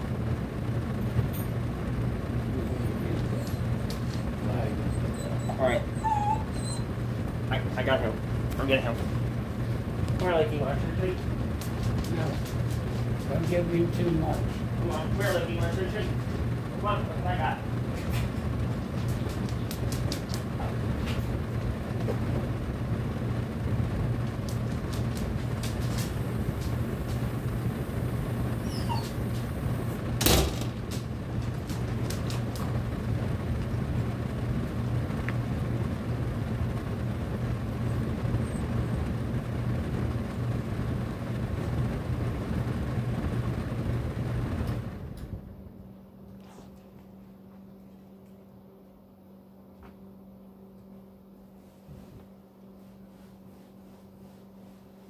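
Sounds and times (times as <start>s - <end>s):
air conditioner air rushing: 0.0s - 55.0s
blower hum: 0.0s - 55.0s.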